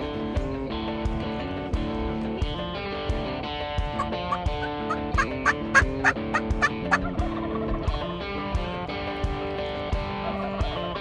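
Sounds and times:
guitar background music: 0.0s - 11.0s
turkey calls: 3.9s - 8.8s, 10.0s - 11.0s.

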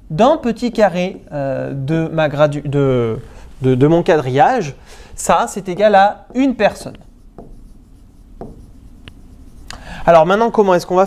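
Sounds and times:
stylus strokes on glass: 6.2s - 9.8s.

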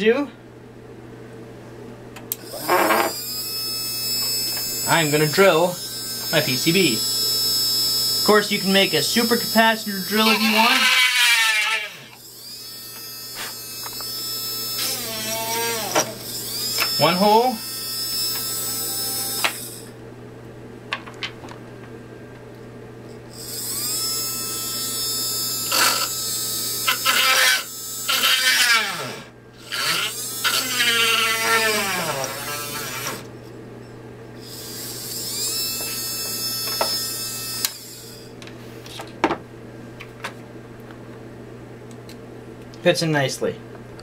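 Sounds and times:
small motor drill whining: 2.3s - 20.0s, 23.3s - 33.3s, 34.4s - 38.3s.

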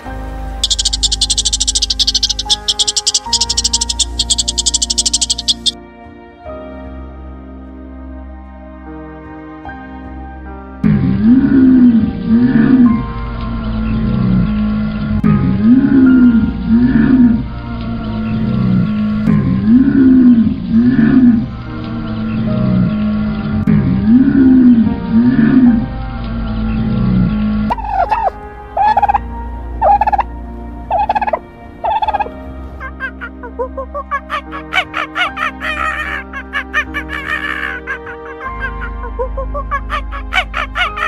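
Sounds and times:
low arching animal calls: 0.0s - 5.8s, 27.7s - 41.0s
short higher animal calls: 0.6s - 5.8s, 27.7s - 29.2s.

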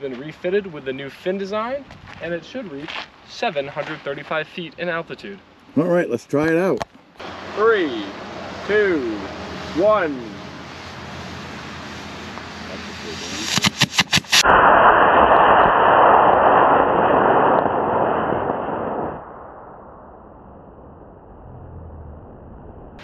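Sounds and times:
rocket motor rushing hiss: 7.2s - 16.8s
rocket motor ignition pops: 13.5s - 14.4s.

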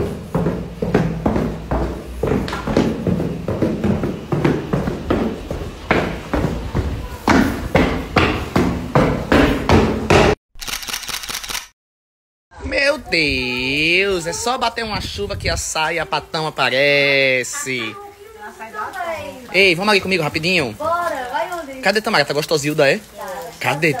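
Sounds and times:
footsteps going down stairs: 0.0s - 10.4s.

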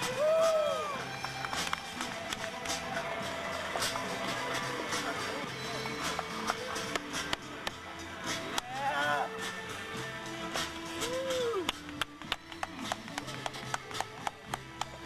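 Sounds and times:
person singing: 2.0s - 15.0s.

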